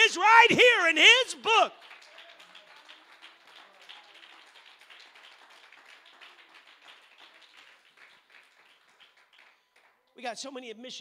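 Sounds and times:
congregation hand-clapping: 0.0 - 10.2.

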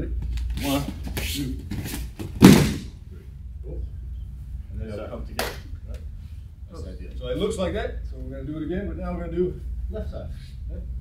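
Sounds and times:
body thudding on mats: 2.2 - 2.9.

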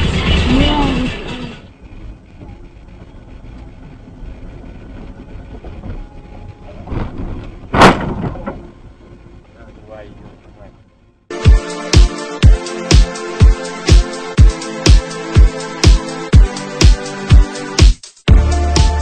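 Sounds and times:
loud car crash: 0.0 - 1.8, 6.8 - 9.3
car cabin road noise: 0.0 - 11.3.

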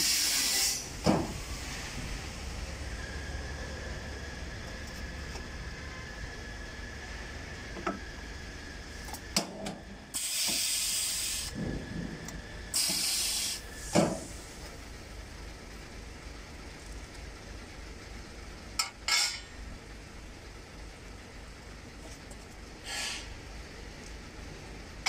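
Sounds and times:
high hiss bursts: 0.0 - 1.9, 10.1 - 11.6, 12.7 - 14.6.

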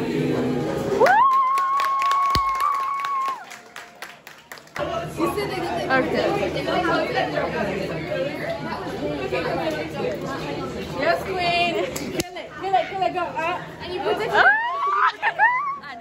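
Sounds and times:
people chatting: 4.8 - 16.0.

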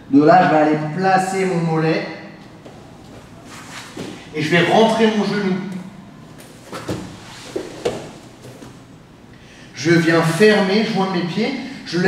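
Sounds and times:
scuffing on mat: 2.6 - 4.3, 6.4 - 8.9
bodies thumping on foam mat: 6.4 - 8.9.

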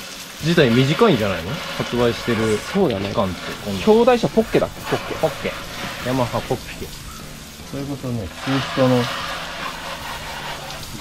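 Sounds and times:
hose spray hitting metal: 0.0 - 11.0.

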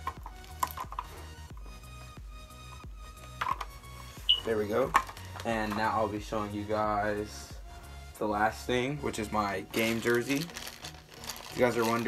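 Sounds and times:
background music: 0.0 - 12.0
plastic helmet clicks and knocks: 2.7 - 3.8.

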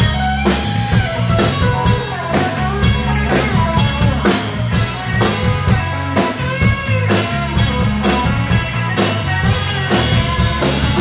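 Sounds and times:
drum kit steady beat: 0.0 - 11.0
electric guitar: 0.0 - 11.0.

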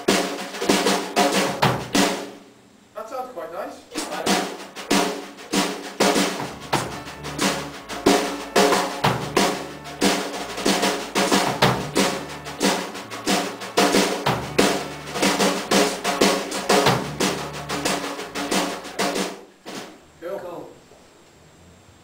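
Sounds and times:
drum kit rock beat: 0.0 - 2.4, 3.9 - 20.0
electric bass guitar: 6.4 - 19.0.

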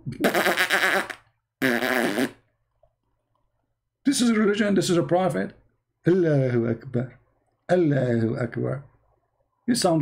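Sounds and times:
fart noises: 0.0 - 2.5.

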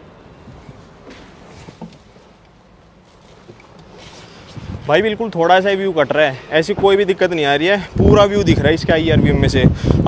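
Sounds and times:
wind rumbling on microphone: 3.2 - 5.7, 6.7 - 10.0.

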